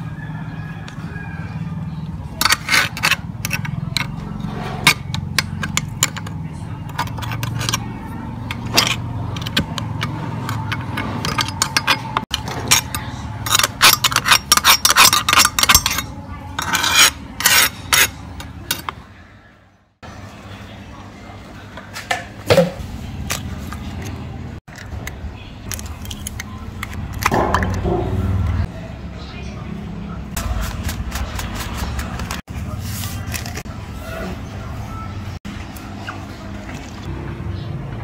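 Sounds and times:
spoon scraping metal barrel: 0:02.4 - 0:19.0.

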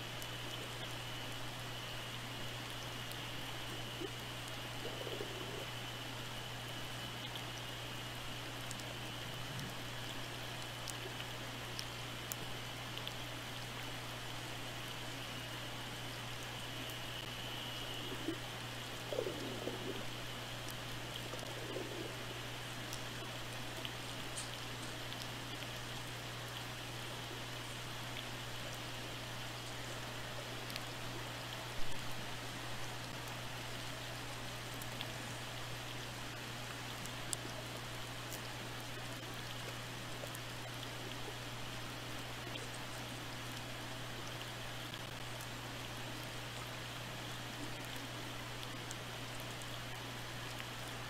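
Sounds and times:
faint clicks and crackles: 0:00.0 - 0:51.0
faint wavering sounds: 0:00.0 - 0:51.0
low hum: 0:00.0 - 0:51.0.

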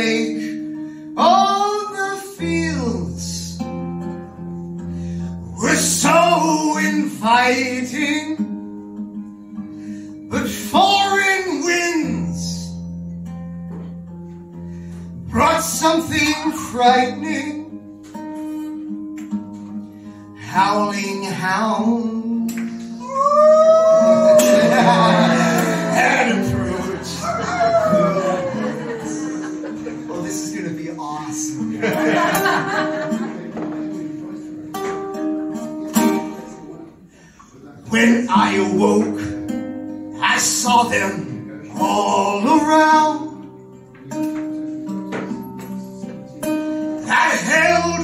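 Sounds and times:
acoustic guitar: 0:00.0 - 0:48.0
strummed guitar chords: 0:00.0 - 0:48.0
person singing: 0:20.4 - 0:30.1, 0:47.0 - 0:48.0.

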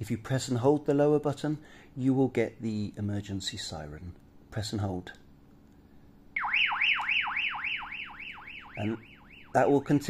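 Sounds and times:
warbling siren from radio speaker: 0:06.4 - 0:10.0.

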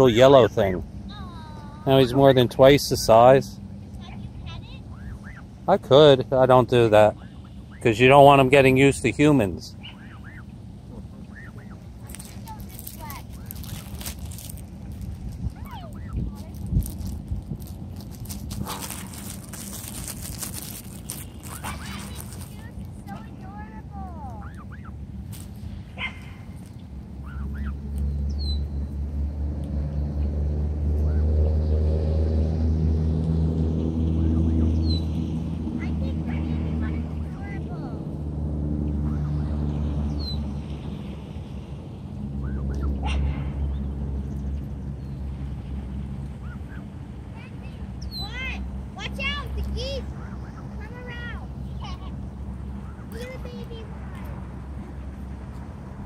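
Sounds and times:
gosling peeping: 0:04.9 - 0:05.5, 0:09.7 - 0:16.9, 0:18.2 - 0:25.4, 0:26.0 - 0:28.8, 0:49.0 - 0:51.9
rushing noise on microphone: 0:12.0 - 0:23.2.

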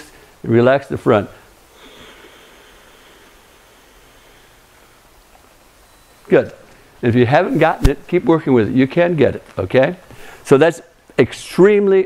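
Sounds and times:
faint steady hiss: 0:00.0 - 0:12.0
soft higher hiss: 0:00.0 - 0:12.0.

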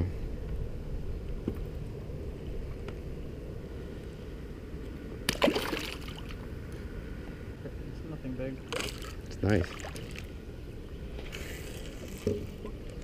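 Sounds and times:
water around a boat: 0:00.0 - 0:13.0
wind rumble: 0:00.0 - 0:13.0
fish splashing into water: 0:05.3 - 0:06.4, 0:08.7 - 0:10.3.

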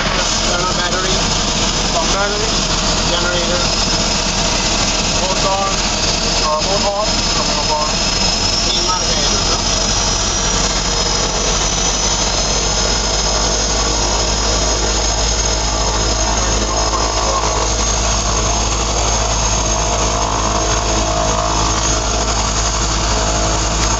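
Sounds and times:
turboprop engine whine and drone: 0:00.0 - 0:23.9.

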